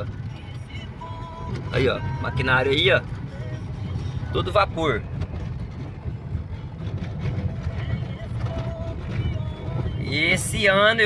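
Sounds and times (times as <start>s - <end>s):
vehicle engine and tyres rumbling: 0.0s - 11.0s.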